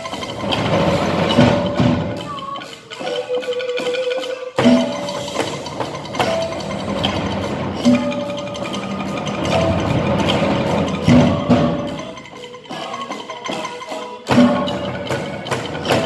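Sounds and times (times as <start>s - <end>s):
percussion ensemble tapping: 0.0s - 16.0s.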